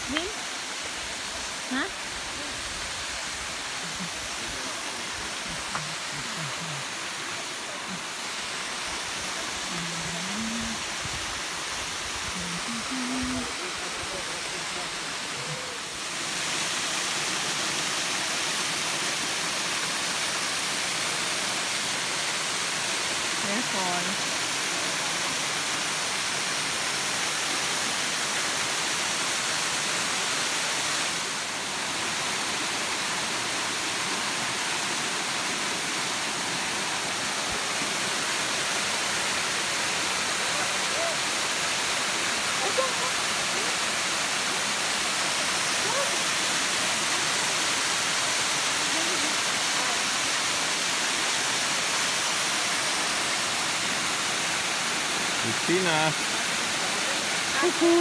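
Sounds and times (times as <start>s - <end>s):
waterfall rushing: 0.0s - 58.0s
faint voices: 12.3s - 16.0s.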